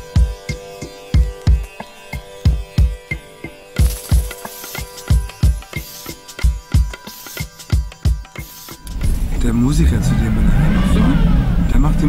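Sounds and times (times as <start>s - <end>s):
low rumble of vehicle noise: 8.9s - 12.0s.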